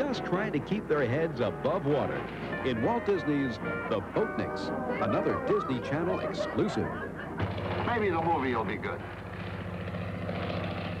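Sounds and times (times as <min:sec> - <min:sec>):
propeller aircraft engine droning: 0:00.0 - 0:11.0.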